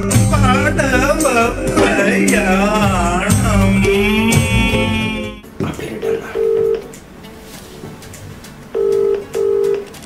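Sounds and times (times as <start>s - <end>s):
phone ringback tone: 6.4s - 6.8s, 8.8s - 9.9s.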